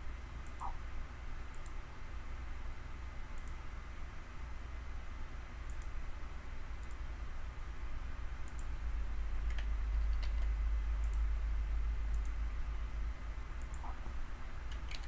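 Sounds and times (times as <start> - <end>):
steady low hum: 0.0 - 15.0
computer mouse clicking: 1.5 - 1.8, 3.4 - 3.6, 5.7 - 6.0, 6.8 - 7.0, 8.4 - 8.7, 9.4 - 11.2, 12.1 - 12.4, 13.6 - 14.0, 14.6 - 15.0.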